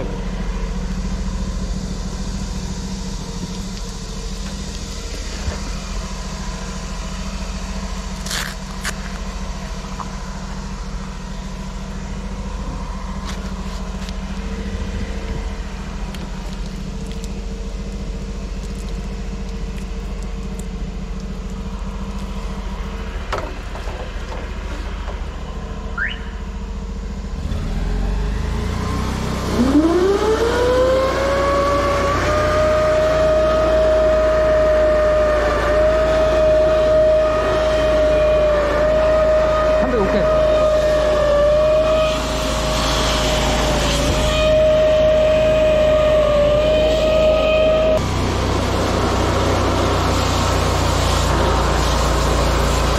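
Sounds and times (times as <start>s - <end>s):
drain jetter engine humming: 0.0s - 52.9s
rising whine: 0.0s - 52.9s.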